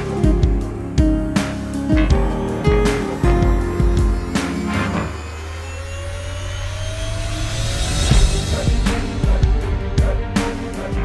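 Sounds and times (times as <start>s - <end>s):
motorcycle engine drone: 0.0s - 11.0s
thin rising whine: 2.3s - 9.4s.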